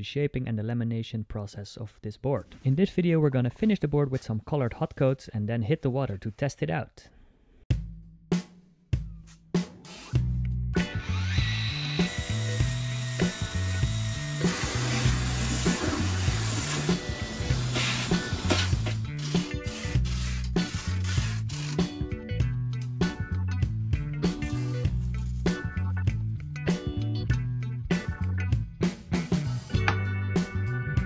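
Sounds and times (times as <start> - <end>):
background music with bassline: 7.7 - 31.0
power tool cutting: 10.8 - 21.9.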